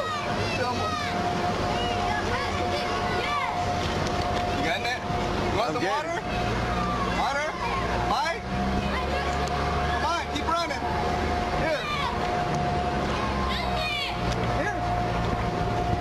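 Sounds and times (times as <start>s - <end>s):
people's voices: 0.0s - 15.3s
motor vehicle engine running: 0.0s - 16.0s
thin steady high tone: 0.0s - 16.0s.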